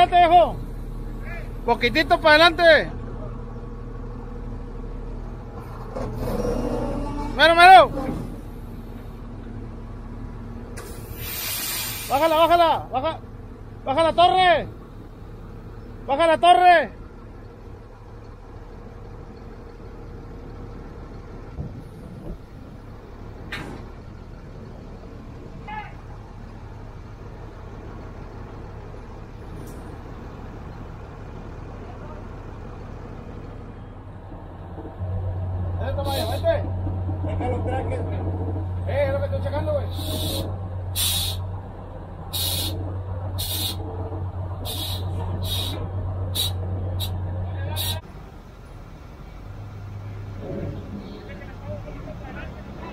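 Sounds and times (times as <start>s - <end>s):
diesel engine idling: 0.0s - 52.9s
air hiss: 10.8s - 12.4s, 39.9s - 41.5s, 42.3s - 42.8s, 43.4s - 43.8s, 44.6s - 47.2s, 47.8s - 48.1s
person shouting calls: 25.6s - 26.1s.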